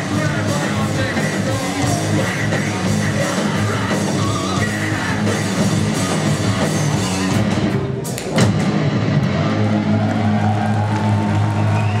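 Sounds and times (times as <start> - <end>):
rock band guitars droning: 0.0 - 12.0.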